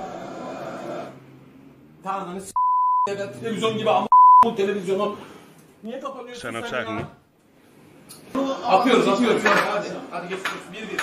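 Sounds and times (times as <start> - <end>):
censor bleeps: 2.6 - 3.1, 4.1 - 4.5.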